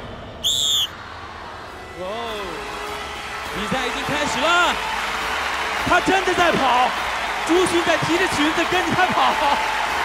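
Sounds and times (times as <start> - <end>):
high whistle blast: 0.4 - 1.0.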